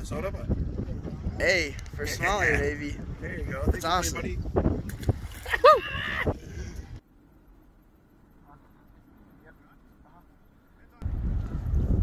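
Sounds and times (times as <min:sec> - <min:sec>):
wind buffeting microphone: 0:00.0 - 0:07.0, 0:11.0 - 0:12.0.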